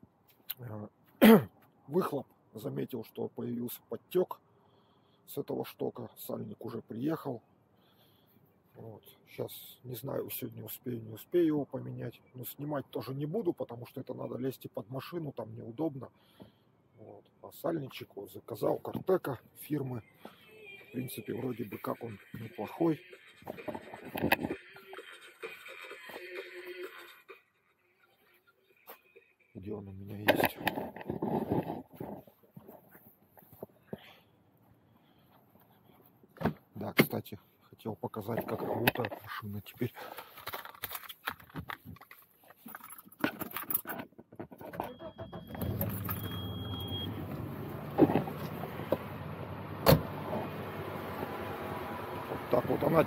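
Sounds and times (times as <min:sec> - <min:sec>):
man speaking: 0:08.8 - 0:16.1, 0:17.0 - 0:20.0, 0:21.0 - 0:23.0, 0:29.6 - 0:30.6, 0:36.8 - 0:40.1, 0:52.5 - 0:53.0
keys rattling in ignition: 0:40.0 - 0:47.0
short high beeps: 0:44.8 - 0:47.2
car engine starting and idling: 0:44.9 - 0:53.0
car door shutting: 0:45.3 - 0:49.2, 0:49.8 - 0:51.3.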